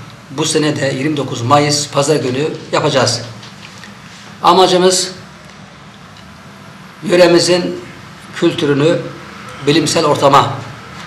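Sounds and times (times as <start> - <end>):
low steady background hum: 0.0 - 11.0
man speaking: 0.3 - 3.4, 4.4 - 5.3, 7.0 - 10.8.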